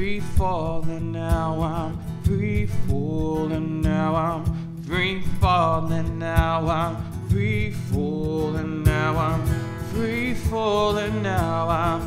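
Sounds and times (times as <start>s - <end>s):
acoustic guitar strumming: 0.0s - 12.0s
man singing long notes: 0.0s - 12.0s.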